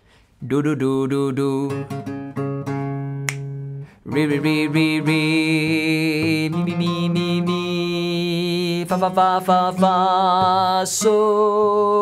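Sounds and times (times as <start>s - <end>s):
fingerstyle acoustic guitar: 1.1s - 12.0s.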